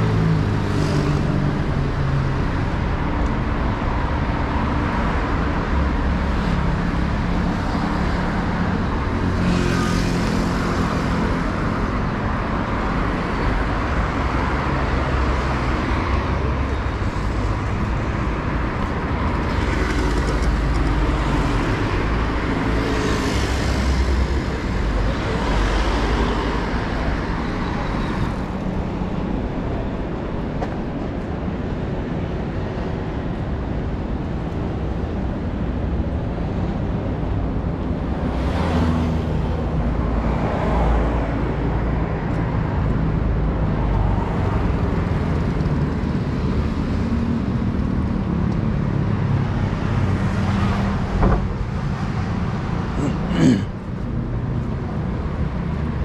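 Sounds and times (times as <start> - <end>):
cars and motorbikes driving past: 0.0 - 56.0.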